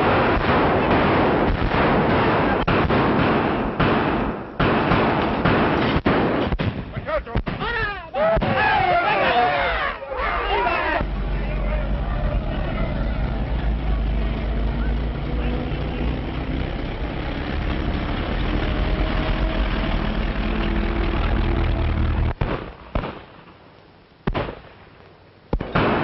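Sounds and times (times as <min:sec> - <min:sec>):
gunfire: 0:00.0 - 0:07.8, 0:22.3 - 0:23.5, 0:24.3 - 0:24.8, 0:25.5 - 0:26.0
explosions: 0:00.0 - 0:08.8, 0:17.6 - 0:23.5, 0:24.2 - 0:24.9, 0:25.5 - 0:26.0
men shouting: 0:07.6 - 0:16.3.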